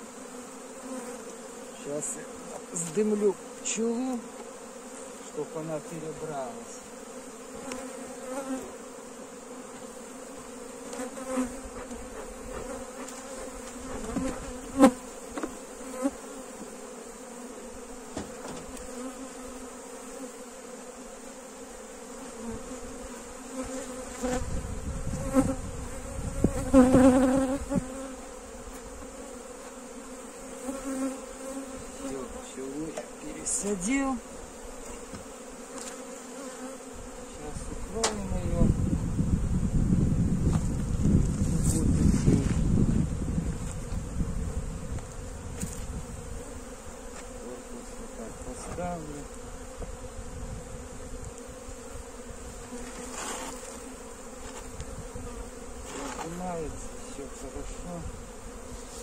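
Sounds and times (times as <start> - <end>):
honeybees humming: 0.0 - 59.0
knocks of wooden hive parts: 18.1 - 18.9, 34.8 - 36.0, 38.0 - 38.2.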